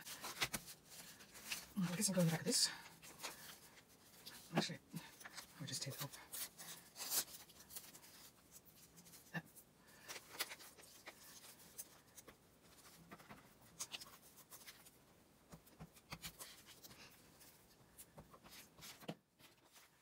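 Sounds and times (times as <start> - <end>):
paper rustling and scraping: 0.0 - 9.3, 9.9 - 20.0.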